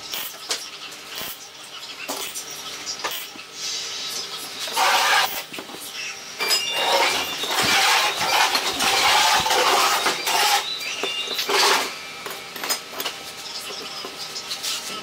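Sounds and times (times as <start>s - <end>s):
steel tubing scraping on workbench: 4.7s - 5.4s, 6.7s - 10.7s, 11.4s - 11.9s.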